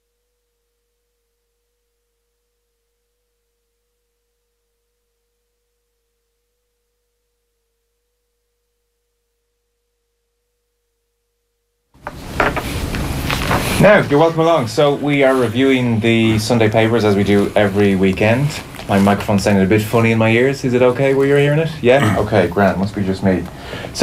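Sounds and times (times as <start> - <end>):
faint steady wavering tone: 0.0 - 11.9.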